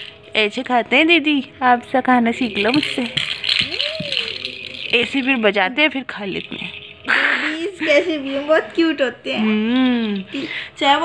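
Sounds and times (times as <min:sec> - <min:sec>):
plastic ball rattle shaken: 0:02.4 - 0:07.5.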